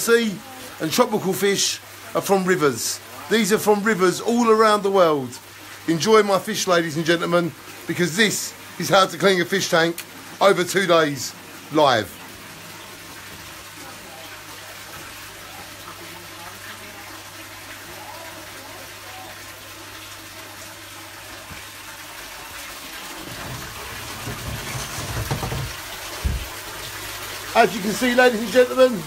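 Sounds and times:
water splashing into aquarium: 0.0s - 29.0s
phone handling rumbles and knocks: 23.3s - 26.5s.

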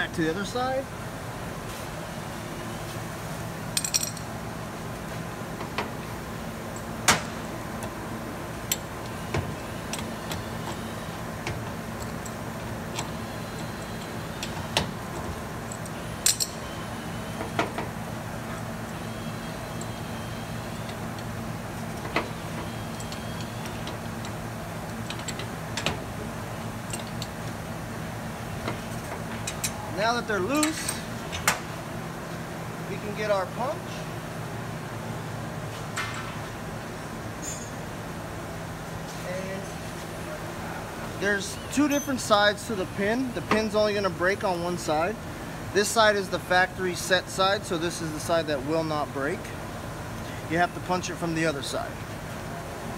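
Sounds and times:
low background hum: 0.0s - 52.9s
metal tool clink on concrete: 3.8s - 4.3s.

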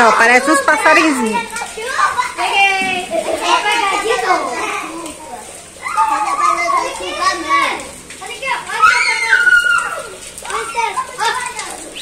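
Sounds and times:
young children shouting: 0.0s - 12.0s.

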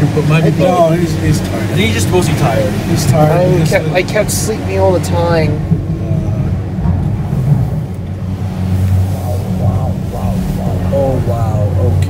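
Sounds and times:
gondola cabin rumble and hum: 0.0s - 12.0s.

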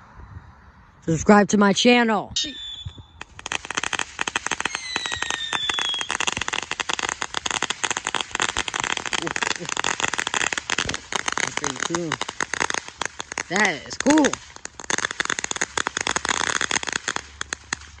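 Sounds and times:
thin falling whistle: 2.4s - 3.2s
firework crackling: 2.6s - 18.0s.

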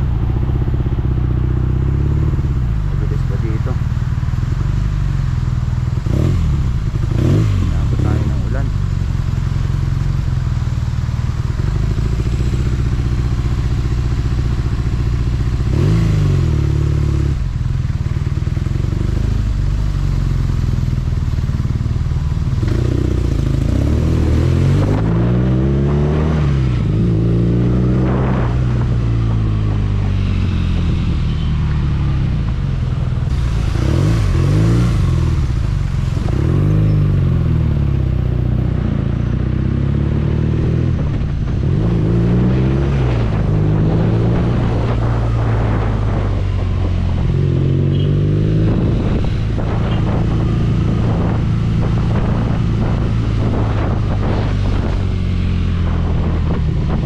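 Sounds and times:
motorcycle engine accelerating: 0.0s - 57.0s
wind and road noise: 0.0s - 57.0s.

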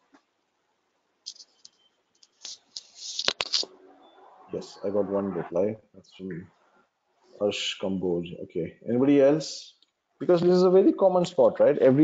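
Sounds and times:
scratchy rustles on microphone: 1.2s - 3.7s
man talking: 4.5s - 6.5s, 7.4s - 12.0s.

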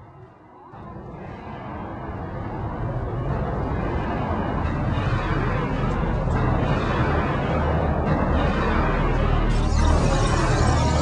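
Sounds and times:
low noisy rumble: 0.0s - 11.0s.

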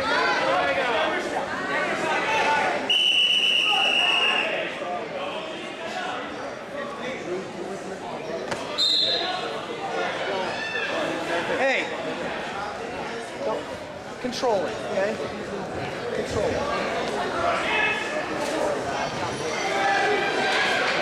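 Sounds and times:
crowd chatter: 0.0s - 21.0s
referee's whistle blasts: 2.9s - 4.6s, 8.8s - 9.3s.

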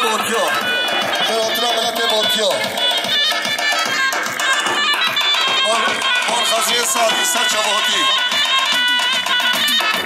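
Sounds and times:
reedy pipe melody: 0.0s - 10.0s
steady drum beat: 0.0s - 10.0s.

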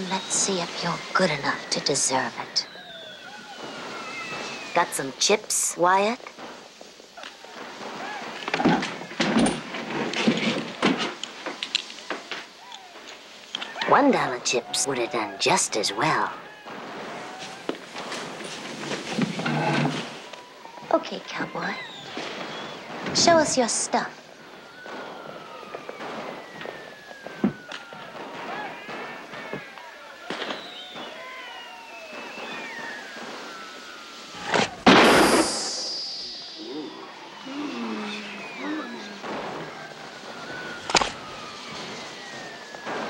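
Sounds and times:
faint thin falling tone: 29.8s - 41.6s.

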